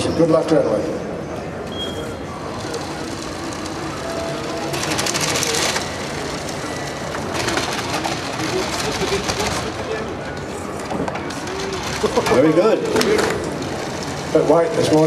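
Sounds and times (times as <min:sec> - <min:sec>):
murmur of onlookers: 0:00.0 - 0:15.0.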